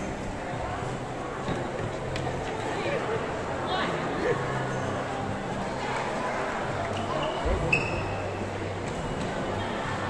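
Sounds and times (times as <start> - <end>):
shoppers and children chattering: 0.0 - 10.0
short sharp squeak: 7.0 - 8.2.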